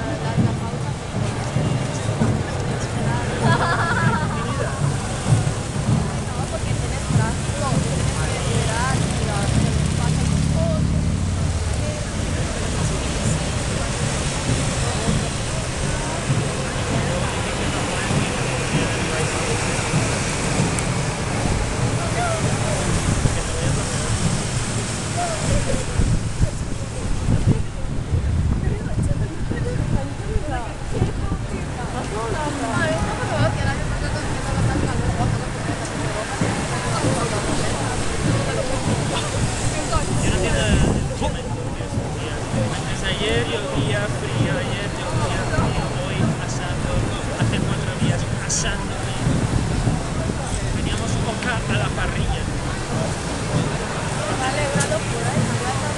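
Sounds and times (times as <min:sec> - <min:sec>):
city street traffic: 0:00.0 - 0:55.9
faint voices of people: 0:00.0 - 0:55.9
people talking: 0:00.0 - 0:55.9.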